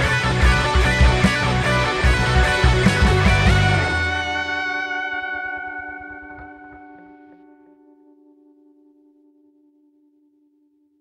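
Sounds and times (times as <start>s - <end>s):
electric guitar chord ringing: 0.0s - 10.7s.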